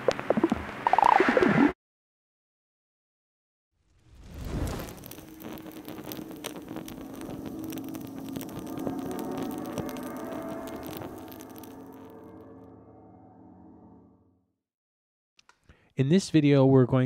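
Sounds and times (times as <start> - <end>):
fire crackling: 3.8 - 12.3
low humming drone: 5.2 - 14.2.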